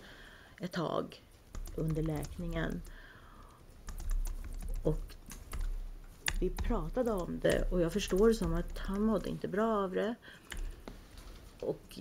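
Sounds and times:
steady low hum: 0.0 - 12.0
typing on keyboard: 1.5 - 9.3, 10.5 - 10.8.

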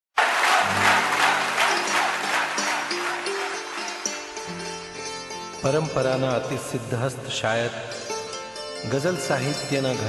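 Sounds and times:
audience applause: 0.1 - 4.7.

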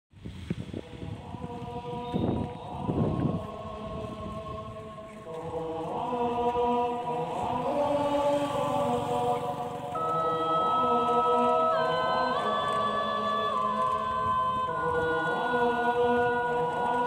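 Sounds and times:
voices chanting in long notes: 0.7 - 17.0.

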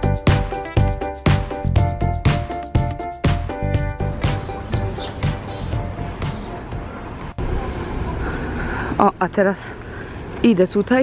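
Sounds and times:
road traffic rumble: 3.3 - 11.0.

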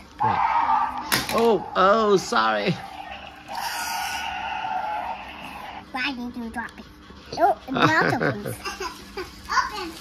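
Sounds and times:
toy dinosaur electronic roar: 0.2 - 5.8.

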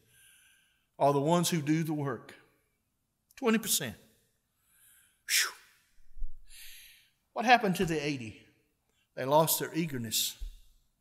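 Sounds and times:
man's sharp breath huff: 4.7 - 5.8, 6.5 - 7.1.

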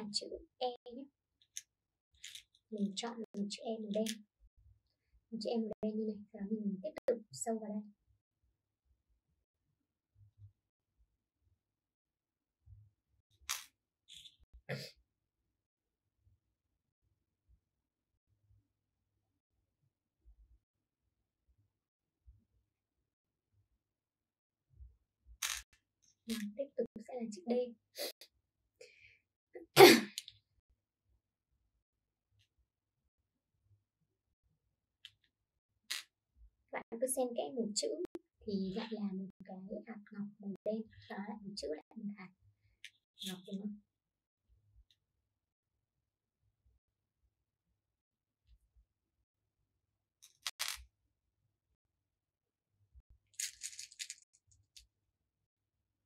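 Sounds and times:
plastic beads clattering: 53.4 - 54.8.

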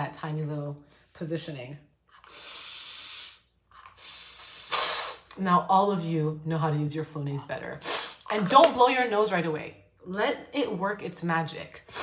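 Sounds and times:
nasal spray hissing: 2.1 - 5.2
person sniffing nasal spray: 2.1 - 5.3, 7.8 - 8.3.

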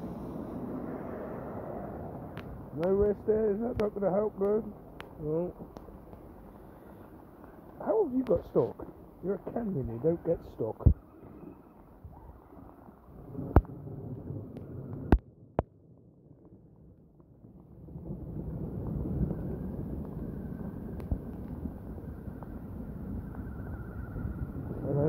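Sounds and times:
wind and rain on microphone: 0.0 - 25.0.

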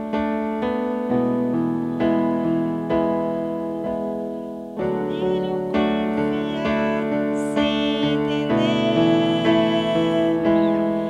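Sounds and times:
electric keyboard piano chords: 0.0 - 11.0.

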